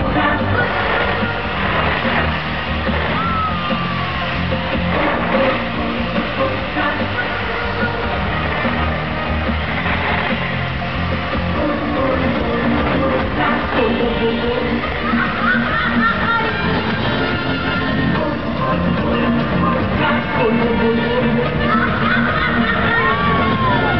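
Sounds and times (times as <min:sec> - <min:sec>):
amplified children's pop music: 0:00.0 - 0:23.9
short falling tone: 0:00.6 - 0:13.4.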